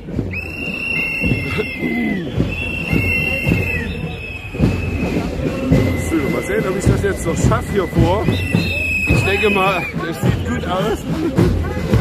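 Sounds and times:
marchers chattering: 0.0 - 12.0
high whistle blasts: 0.3 - 10.8.

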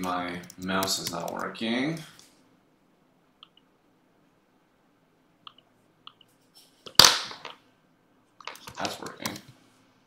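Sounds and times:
computer mouse clicks: 5.4 - 6.3.

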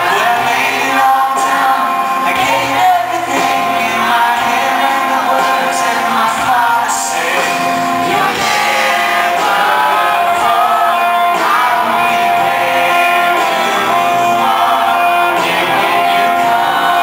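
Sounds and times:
acoustic-electric guitar: 0.0 - 17.0
man singing into a microphone: 0.0 - 17.0.

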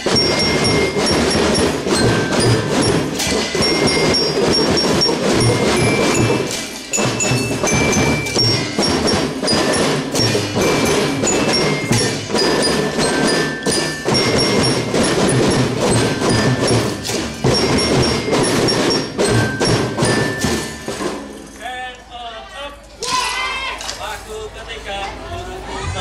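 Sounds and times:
children's drum band playing: 0.0 - 21.7.

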